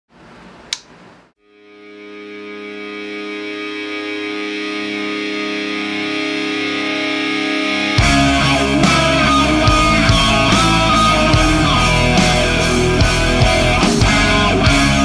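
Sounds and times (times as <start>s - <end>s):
distorted electric guitar chord: 1.4s - 15.0s.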